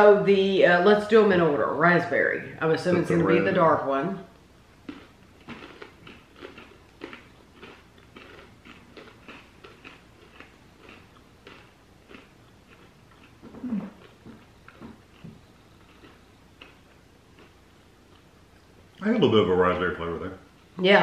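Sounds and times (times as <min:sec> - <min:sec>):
person humming: 0:02.9 - 0:03.7
crunchy pretzels being chewed: 0:04.8 - 0:19.0.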